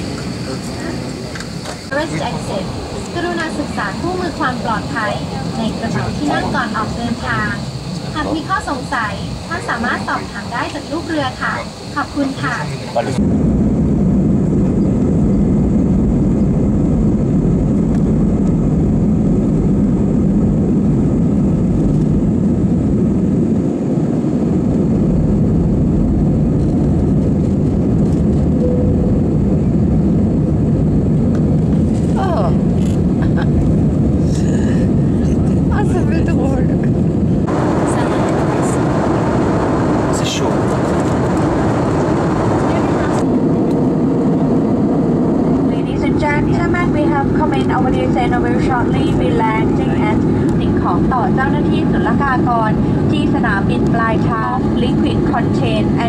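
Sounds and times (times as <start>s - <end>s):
jet engine and airflow rumble: 0.0s - 56.0s.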